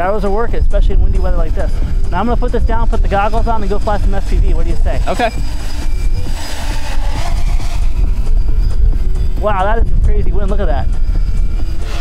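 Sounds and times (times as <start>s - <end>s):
quadcopter motors humming: 0.0s - 12.0s
wind buffeting microphone: 0.0s - 12.0s.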